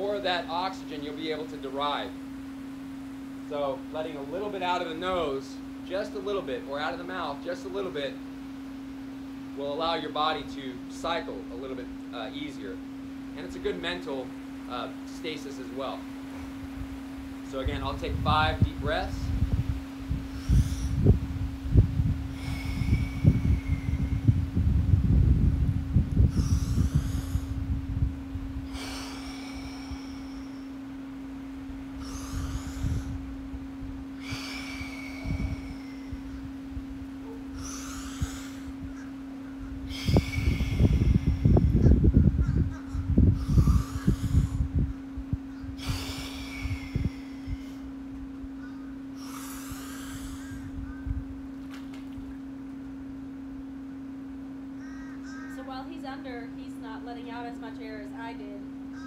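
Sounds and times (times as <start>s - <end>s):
steady low hum: 0.0s - 59.0s
low rumble: 11.4s - 59.0s
man breathing deeply: 19.0s - 51.4s.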